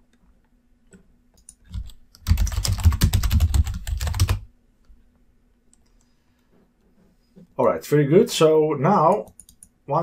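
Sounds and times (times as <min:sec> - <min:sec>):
fast typing on keyboard: 0:01.7 - 0:04.5.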